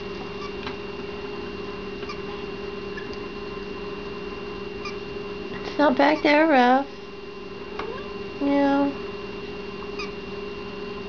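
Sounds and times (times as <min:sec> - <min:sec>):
electrical hum: 0:00.0 - 0:11.0
faint high whine from speaker: 0:00.0 - 0:11.0.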